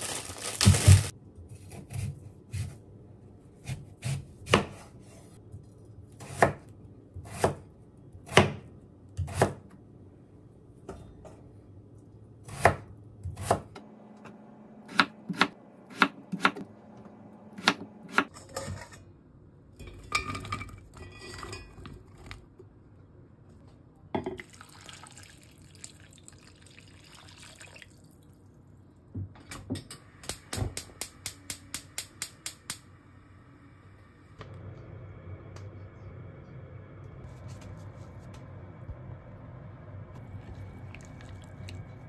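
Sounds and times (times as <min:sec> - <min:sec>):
knife chopping on wooden board: 0:14.9 - 0:16.6
water pouring into pot: 0:24.4 - 0:28.3, 0:40.3 - 0:42.0.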